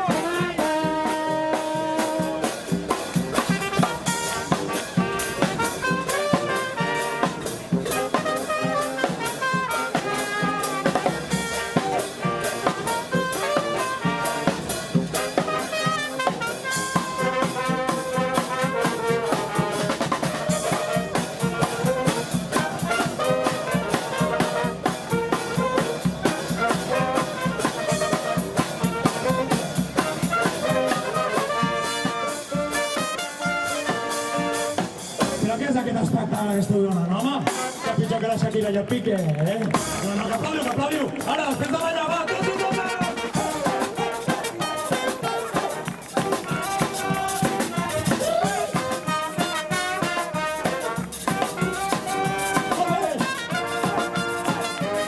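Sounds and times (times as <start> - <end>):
snare drum: 0.0 - 35.8, 36.5 - 55.0
bass drum: 0.0 - 55.0
brass band playing: 0.0 - 55.0
cymbals: 42.3 - 55.0.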